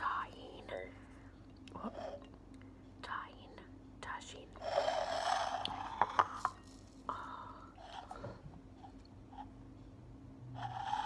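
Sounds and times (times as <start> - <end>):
woman whispering: 0.0 - 1.1, 3.0 - 4.8.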